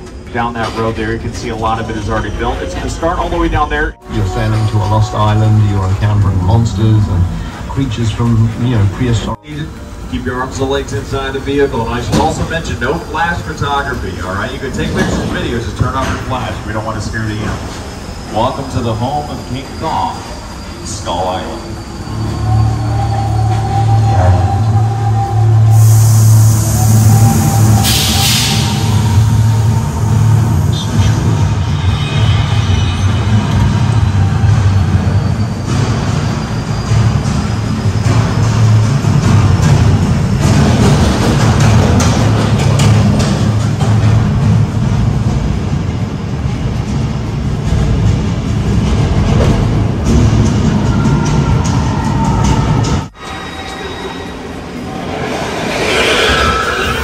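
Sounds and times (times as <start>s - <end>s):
dramatic music over speakers: 3.0s - 11.9s
deep low rumble: 54.3s - 57.0s.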